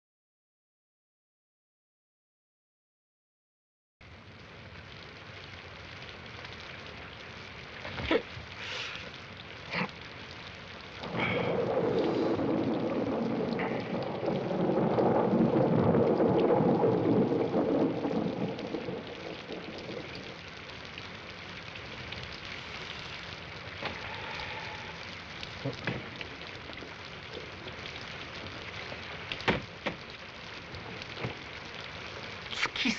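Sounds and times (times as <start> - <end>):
steady rain: 4.0 - 32.9
rolling thunder: 10.9 - 22.4.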